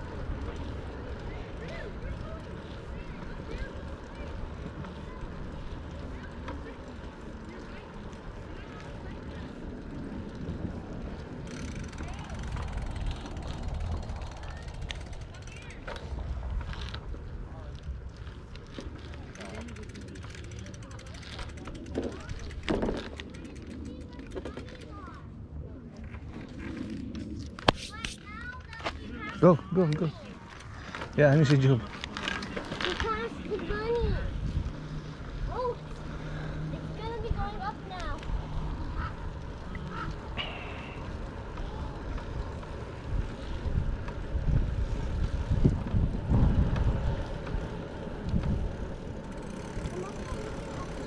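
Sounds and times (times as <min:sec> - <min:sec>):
bike rattling and knocking: 0:00.0 - 0:25.2, 0:28.3 - 0:51.0
bicycle tyres rolling on pavement: 0:00.0 - 0:51.0
wind rumble on microphone: 0:33.9 - 0:35.6, 0:41.2 - 0:50.1.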